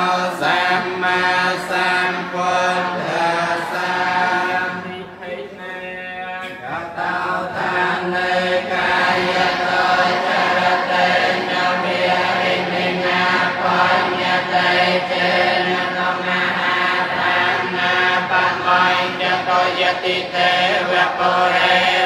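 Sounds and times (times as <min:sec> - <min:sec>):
men chanting in unison: 0:00.0 - 0:22.0.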